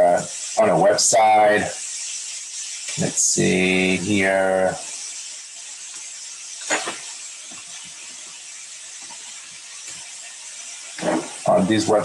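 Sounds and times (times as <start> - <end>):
steady microphone hiss: 0.0 - 12.0.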